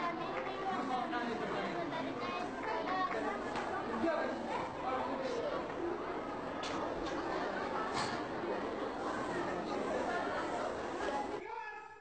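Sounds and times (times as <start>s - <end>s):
children chattering: 0.0s - 11.4s.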